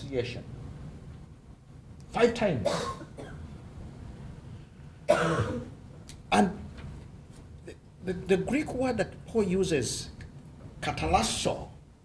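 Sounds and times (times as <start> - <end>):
man coughing: 2.6 - 3.4, 5.1 - 5.8.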